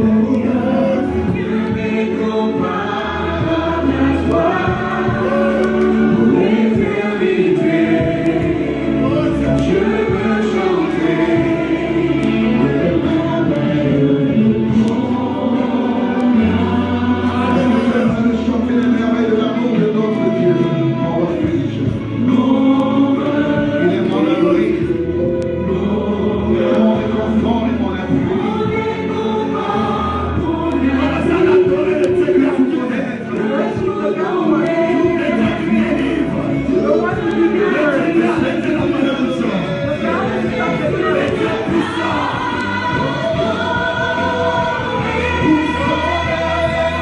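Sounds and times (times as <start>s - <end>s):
group of voices singing gospel: 0.0s - 47.0s
held accompaniment: 0.0s - 47.0s.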